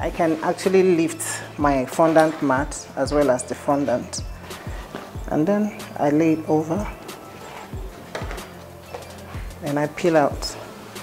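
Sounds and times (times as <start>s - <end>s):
background music: 0.0s - 11.0s
soft knocks and rustles: 6.8s - 9.6s.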